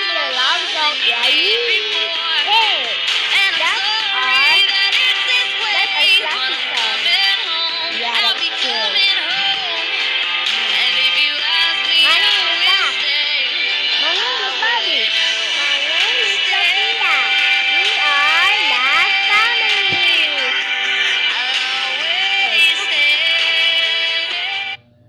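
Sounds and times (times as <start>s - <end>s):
musical backing: 0.0s - 24.8s
person singing with pitch slides: 0.0s - 24.8s.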